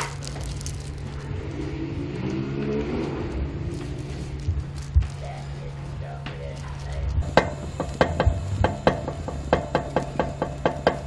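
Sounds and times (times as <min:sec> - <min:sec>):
engine running: 0:00.0 - 0:11.0
steady low hum: 0:00.0 - 0:11.0.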